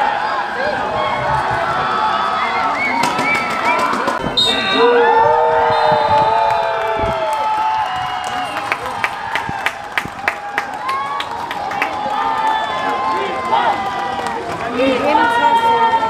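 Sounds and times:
spectators shouting and cheering: 0.0s - 16.0s.

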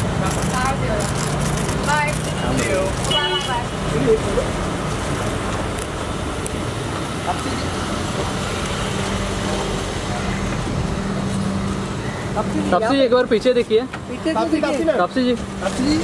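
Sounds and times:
street traffic noise: 0.0s - 16.0s.

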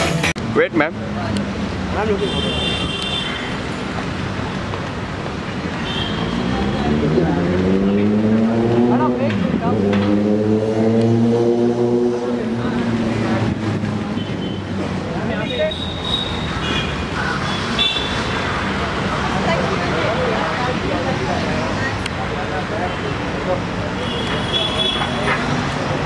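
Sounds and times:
vehicle engine accelerating: 6.3s - 14.1s.

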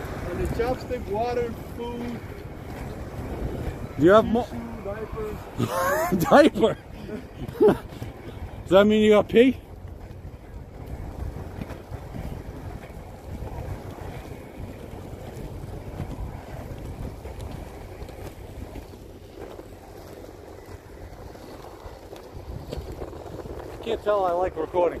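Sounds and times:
wind on microphone: 0.0s - 25.0s.

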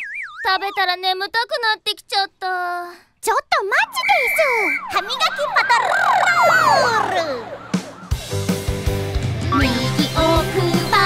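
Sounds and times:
cartoon siren wails: 0.0s - 1.0s, 3.7s - 8.4s.

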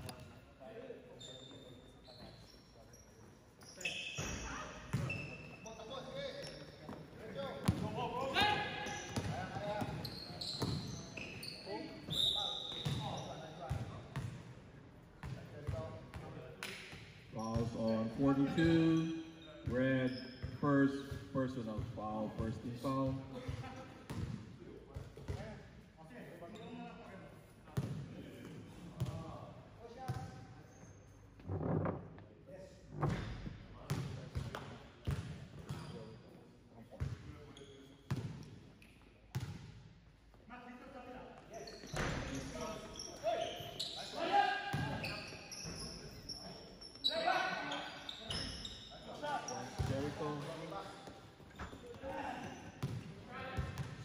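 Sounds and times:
basketball bouncing on indoor court: 4.2s - 5.4s, 7.6s - 11.0s, 12.7s - 14.5s, 15.2s - 17.8s, 21.8s - 25.5s, 27.7s - 28.0s, 33.1s - 36.0s, 36.9s - 37.4s, 38.1s - 38.6s, 39.3s - 39.8s, 44.7s - 45.9s, 49.7s - 50.4s, 51.0s - 54.0s.

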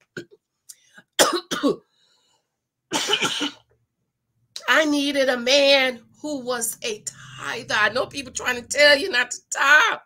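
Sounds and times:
woman coughing: 1.2s - 1.9s, 2.9s - 3.7s.

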